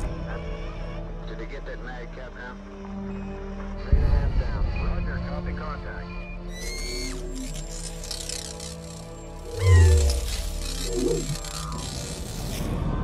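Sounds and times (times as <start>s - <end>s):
dramatic film music: 0.0s - 13.0s
falling electronic whistles: 6.5s - 12.2s.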